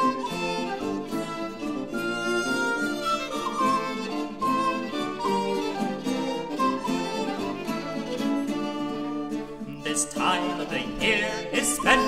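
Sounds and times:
fiddle playing a tune: 0:00.0 - 0:12.0
plucked-string accompaniment: 0:00.0 - 0:12.0.

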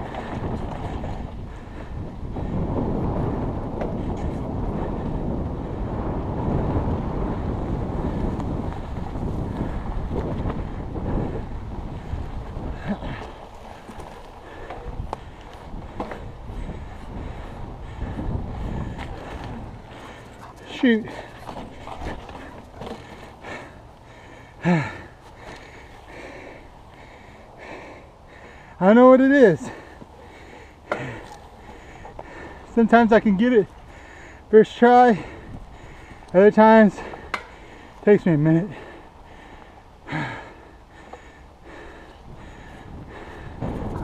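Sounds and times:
wind buffeting microphone: 0:00.0 - 0:44.0
tyres rolling over grass: 0:11.6 - 0:24.1.

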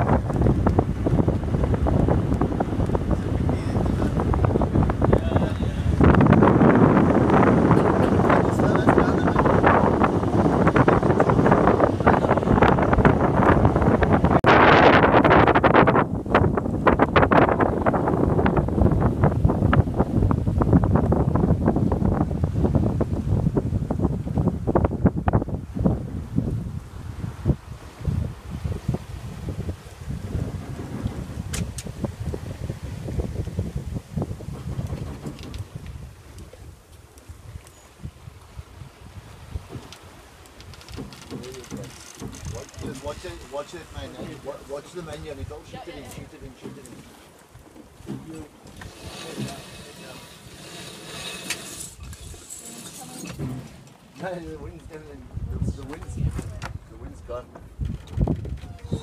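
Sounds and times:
wind buffeting microphone: 0:00.0 - 0:59.0
small knocks: 0:39.7 - 0:43.0.

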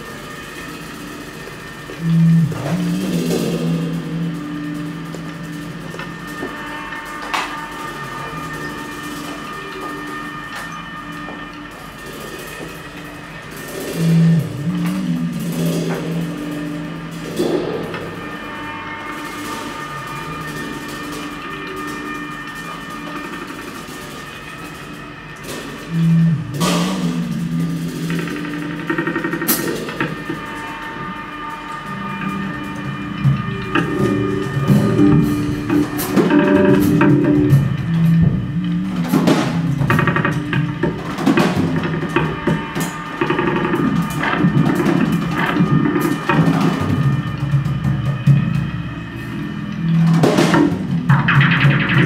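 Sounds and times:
cymbal and drum strikes: 0:00.0 - 0:52.0
high electronic drone: 0:00.0 - 0:52.0
bass guitar notes: 0:01.9 - 0:06.5, 0:14.0 - 0:18.0, 0:25.9 - 0:28.8, 0:31.9 - 0:42.3
held electronic tones: 0:02.0 - 0:06.5.

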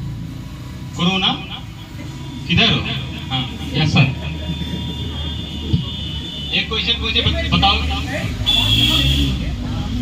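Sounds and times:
children talking: 0:01.6 - 0:10.0.

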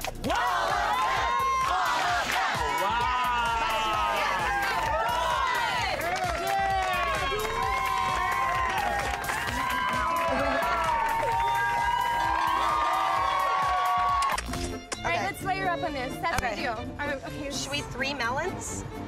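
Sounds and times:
background music: 0:00.0 - 0:19.0
crowd cheering and shouting: 0:00.2 - 0:14.7.

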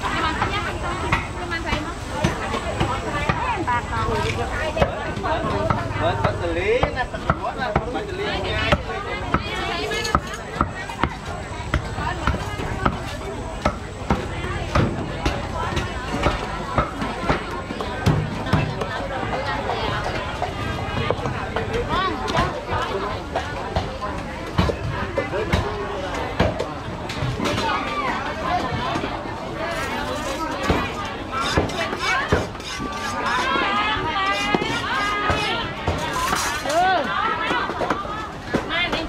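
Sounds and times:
market chatter: 0:00.0 - 0:39.0.

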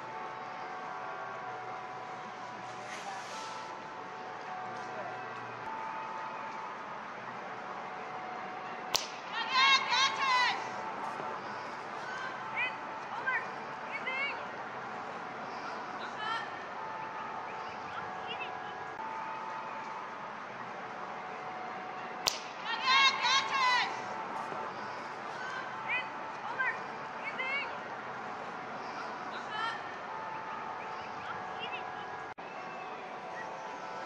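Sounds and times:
players shouting: 0:07.9 - 0:14.4, 0:21.7 - 0:27.7.

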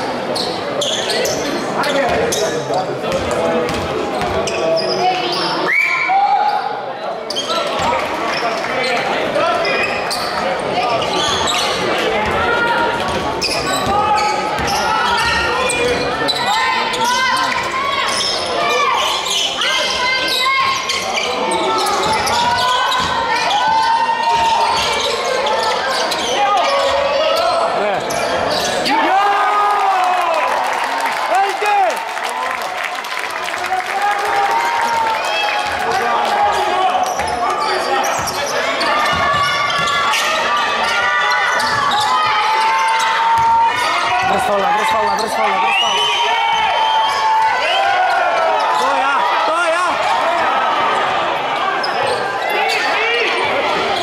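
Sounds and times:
shoes squeaking: 0:07.3 - 0:28.9.

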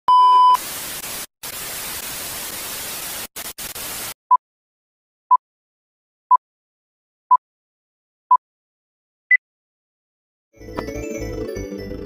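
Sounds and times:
tv static hiss: 0:00.6 - 0:04.2.

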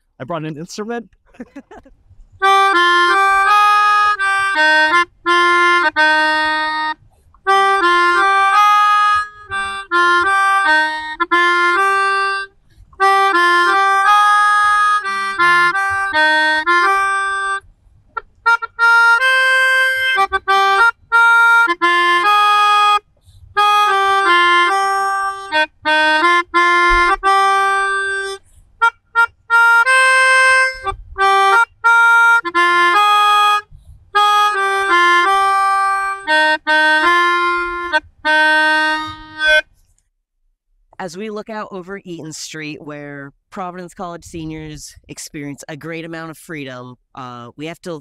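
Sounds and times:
melodica notes: 0:02.4 - 0:17.6, 0:18.2 - 0:39.7.

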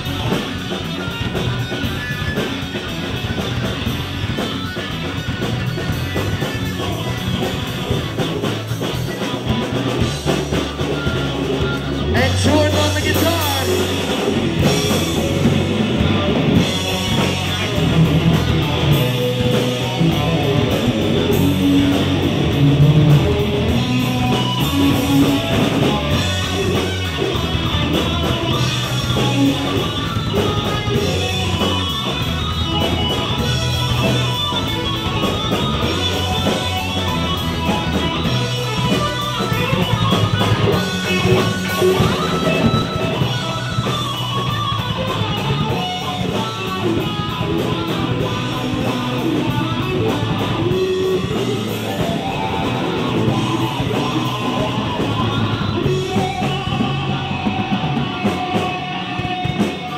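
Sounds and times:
bass guitar: 0:00.0 - 0:59.9
electric guitar: 0:00.0 - 0:59.9
live rock band playing: 0:00.0 - 0:59.9.

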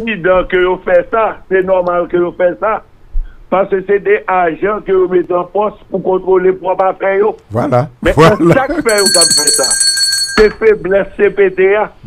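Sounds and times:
man speaking: 0:03.6 - 0:09.8
high bell-like ring: 0:08.8 - 0:10.8.

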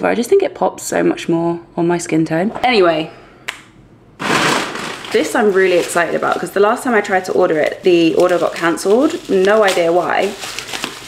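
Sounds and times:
plastic packaging crinkling: 0:04.2 - 0:11.0.

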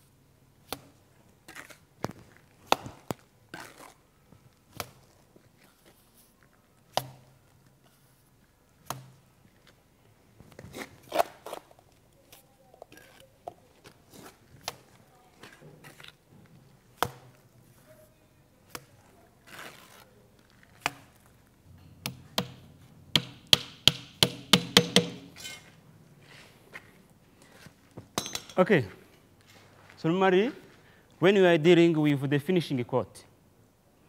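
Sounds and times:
trowel knocking and scraping: 0:23.2 - 0:25.7.

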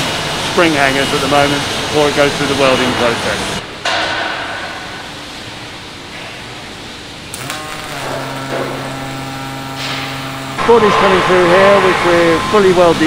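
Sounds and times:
low buzzing hum: 0:00.0 - 0:13.0
arc welder hissing: 0:06.4 - 0:13.0.

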